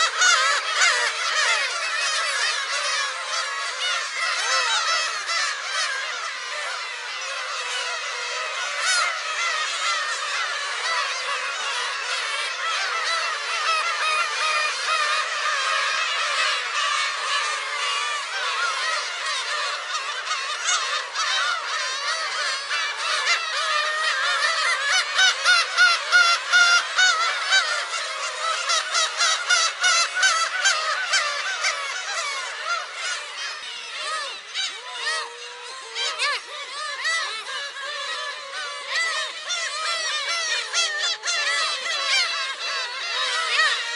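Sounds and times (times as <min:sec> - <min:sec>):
gull colony calling: 0:00.0 - 0:43.9.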